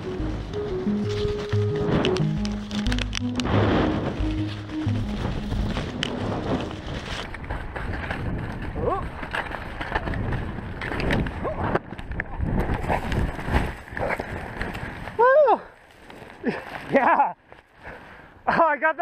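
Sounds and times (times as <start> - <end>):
skis scraping over snow: 0.0 - 11.4.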